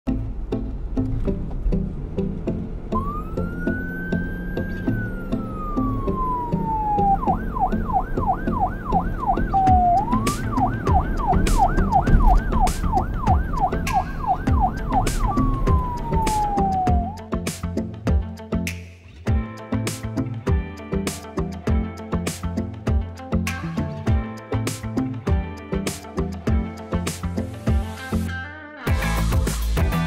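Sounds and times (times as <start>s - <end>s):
background music: 0.1s - 30.0s
police siren wailing and yelping: 3.0s - 17.2s.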